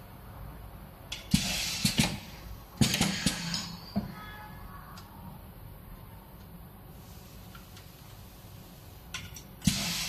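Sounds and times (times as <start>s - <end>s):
print carriage clacking and hissing: 1.3s - 3.8s, 9.6s - 10.0s
faint ringing: 3.4s - 5.0s.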